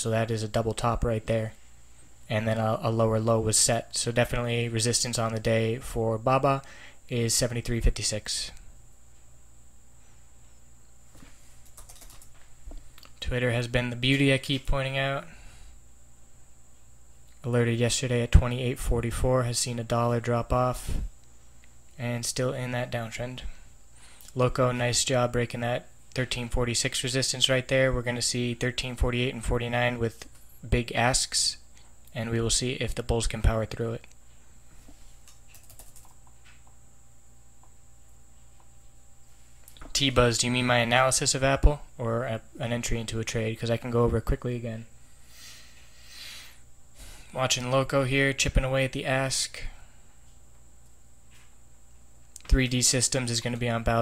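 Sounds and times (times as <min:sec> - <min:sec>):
low electrical hum: 0:00.0 - 0:54.0
faint keyboard keystrokes: 0:11.6 - 0:12.4, 0:35.2 - 0:36.8.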